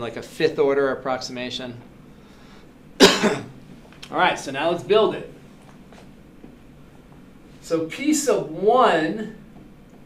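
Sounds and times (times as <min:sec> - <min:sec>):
man coughing: 0:03.0 - 0:03.6.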